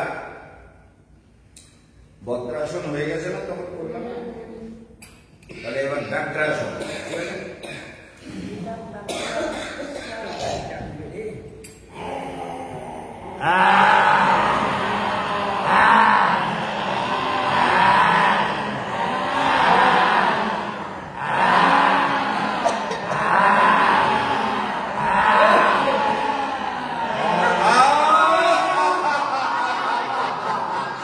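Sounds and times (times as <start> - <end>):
man's loud vocal cries: 11.9 - 16.7.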